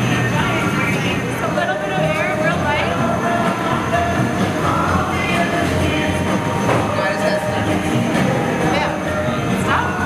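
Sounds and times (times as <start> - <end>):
furnace rushing noise: 0.0 - 10.0
people talking: 0.0 - 10.0.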